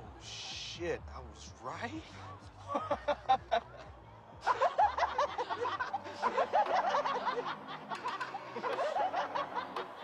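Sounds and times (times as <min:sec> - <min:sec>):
people laughing mockingly: 0:02.6 - 0:10.0.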